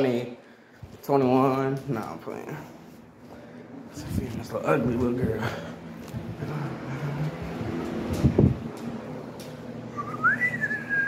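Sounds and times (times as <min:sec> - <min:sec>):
person whistling: 0:10.0 - 0:11.0.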